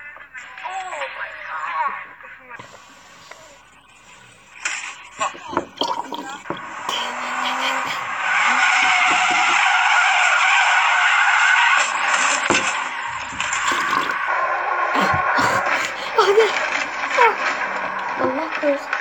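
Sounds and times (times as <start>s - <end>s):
car tyres screeching: 2.6s - 19.0s.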